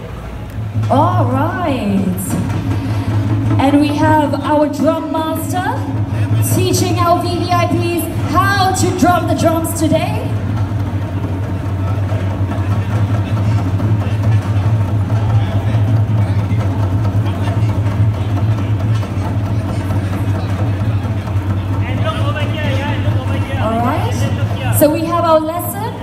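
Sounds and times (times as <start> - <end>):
drum ensemble playing lightly: 0.0 - 26.0.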